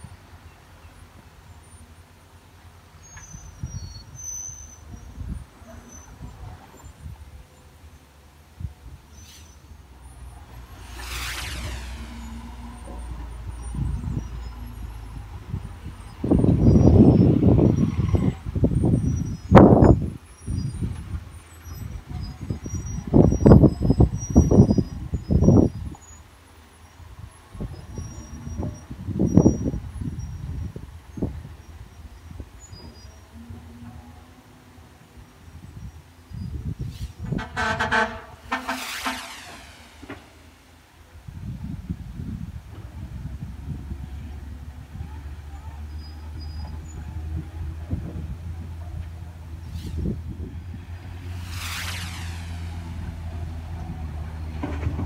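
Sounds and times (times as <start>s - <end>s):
dump truck engines rumbling: 0.0s - 55.0s
wind on microphone: 3.3s - 7.4s, 8.5s - 26.1s, 27.0s - 34.1s, 35.1s - 45.4s, 46.3s - 55.0s.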